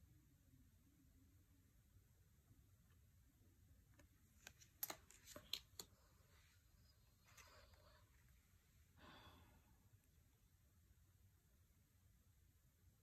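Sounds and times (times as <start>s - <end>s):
cards clicking and tapping: 4.0s - 6.0s.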